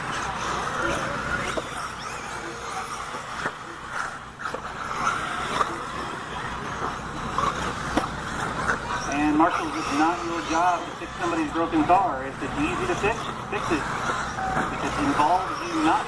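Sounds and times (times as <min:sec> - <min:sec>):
rc car motors whirring: 0:00.0 - 0:16.0.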